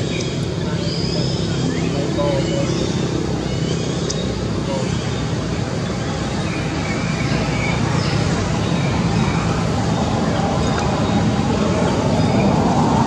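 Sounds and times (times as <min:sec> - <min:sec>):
roadway hum: 0:00.0 - 0:13.0.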